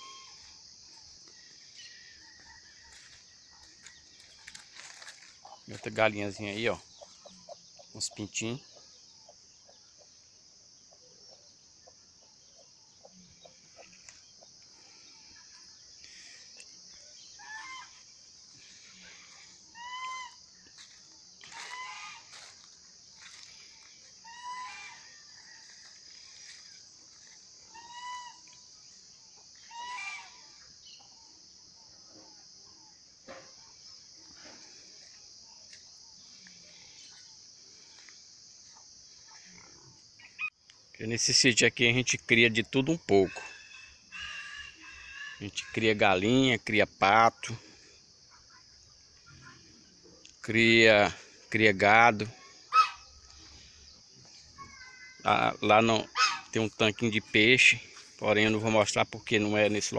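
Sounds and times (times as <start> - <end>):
chickens calling: 16.2 - 28.6, 29.4 - 31.2, 51.9 - 53.7, 54.6 - 56.7.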